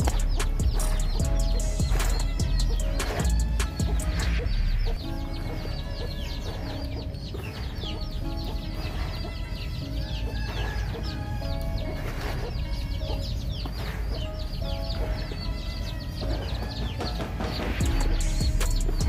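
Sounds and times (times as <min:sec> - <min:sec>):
chicks peeping: 0:00.0 - 0:19.0.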